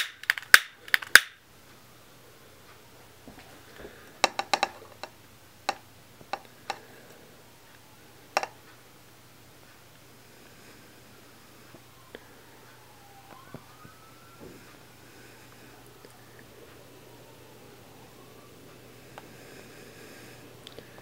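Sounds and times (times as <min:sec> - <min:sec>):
faint low hum: 0:00.0 - 0:21.0.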